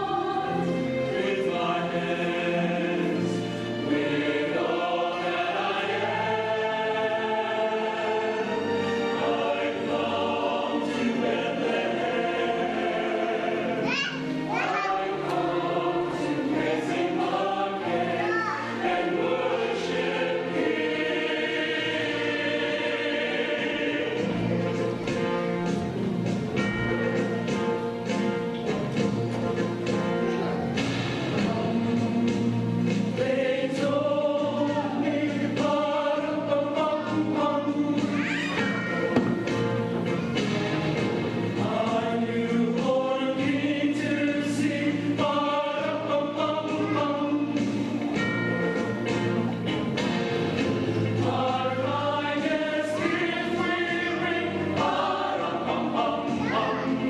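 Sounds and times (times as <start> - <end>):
choir singing in harmony: 0.0 - 57.0.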